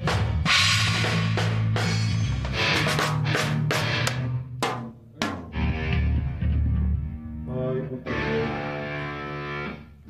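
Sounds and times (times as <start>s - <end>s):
rock band chord on guitars and bass: 0.0s - 4.4s, 5.5s - 7.2s
drum kit hits: 0.0s - 5.7s.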